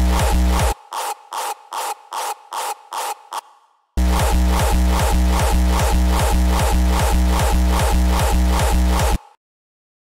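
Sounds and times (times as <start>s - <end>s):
hardstyle track with distorted kick: 0.0s - 0.8s, 4.0s - 9.4s
noisy rasping pulsing layer: 0.0s - 3.2s, 4.0s - 9.3s.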